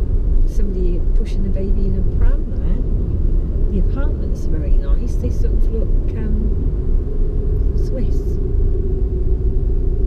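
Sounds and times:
car driving rumble from inside: 0:00.0 - 0:10.0
person talking: 0:03.8 - 0:06.5.

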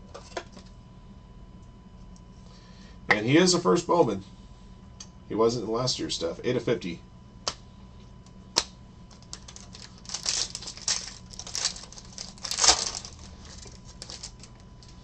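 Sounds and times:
foil pack crinkling: 0:09.1 - 0:15.0.

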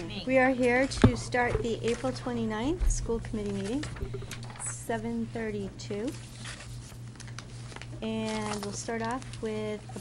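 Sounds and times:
low electrical hum: 0:00.0 - 0:10.0
paper rustling and shuffling: 0:03.4 - 0:04.7, 0:06.0 - 0:10.0
paper crinkles: 0:06.1 - 0:10.0.

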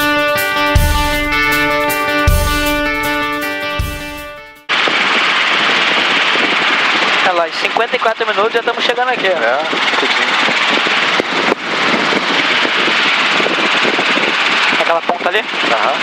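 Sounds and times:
intro music with low beat: 0:00.0 - 0:04.7
helicopter engine and rotor drone: 0:05.3 - 0:16.0.

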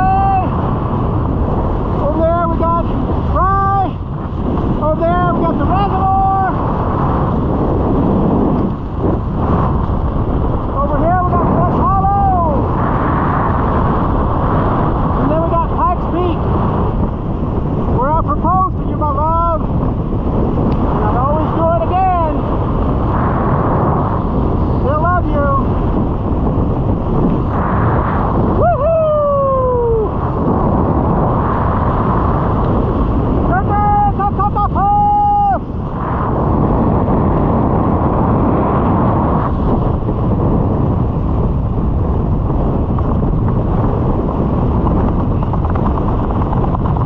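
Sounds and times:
person's voice: 0:00.0 - 0:00.6, 0:02.0 - 0:04.0, 0:04.8 - 0:06.6, 0:10.7 - 0:12.7, 0:15.2 - 0:16.5, 0:18.0 - 0:19.6, 0:21.0 - 0:22.5, 0:24.8 - 0:25.8, 0:33.4 - 0:35.6
wind rushing over microphone: 0:00.0 - 0:47.0.

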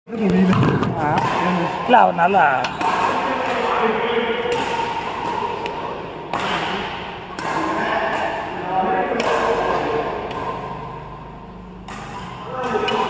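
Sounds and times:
people talking and calling out: 0:00.1 - 0:13.0.

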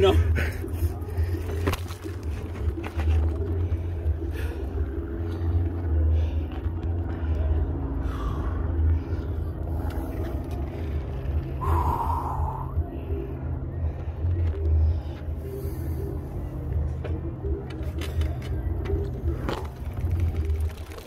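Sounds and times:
bike tyres rolling on path: 0:00.0 - 0:13.3, 0:16.7 - 0:21.0.

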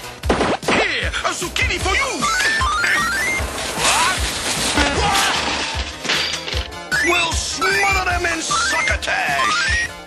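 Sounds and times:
cartoon background music: 0:00.0 - 0:10.0
crashing and clattering: 0:02.1 - 0:07.0.

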